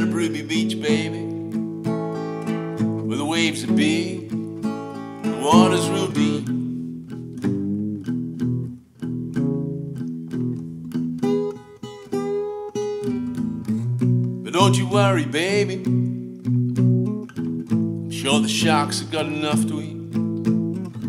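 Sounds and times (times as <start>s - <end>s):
person singing: 0.0s - 1.4s, 3.0s - 6.7s, 14.4s - 16.1s, 18.2s - 20.0s
acoustic guitar blues: 0.0s - 21.0s.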